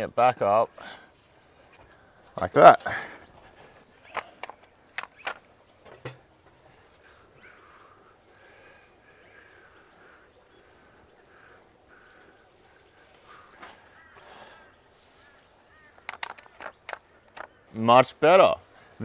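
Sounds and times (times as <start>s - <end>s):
faint bird calls: 0.7s - 17.8s
sharp clicks of plant trellis: 3.9s - 6.3s, 15.9s - 17.6s.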